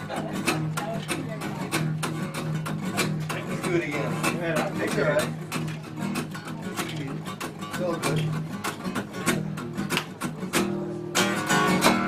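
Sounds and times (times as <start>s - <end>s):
acoustic guitar strumming: 0.0s - 12.0s
man's voice: 3.3s - 5.4s.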